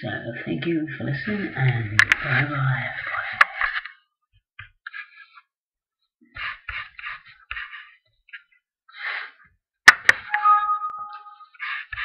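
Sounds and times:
two-pitch ringing chime: 10.3 - 11.6.

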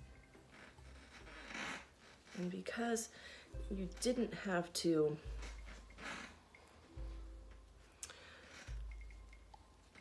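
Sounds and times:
bungee cord rasping: 0.0 - 3.1, 5.2 - 6.8, 8.0 - 10.0
hair rustling: 0.0 - 10.0.

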